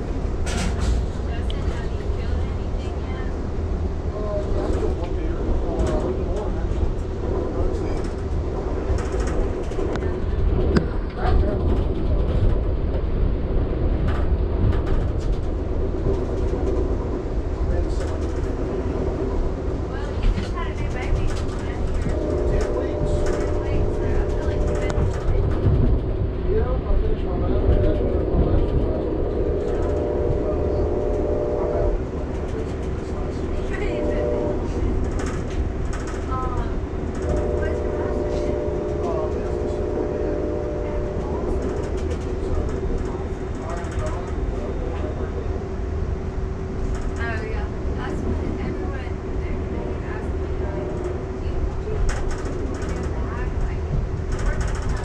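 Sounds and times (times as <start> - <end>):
train wheels rumbling on rails: 0.0 - 55.0
locomotive horn: 22.0 - 25.3, 28.7 - 32.1, 33.6 - 35.0, 37.1 - 42.1.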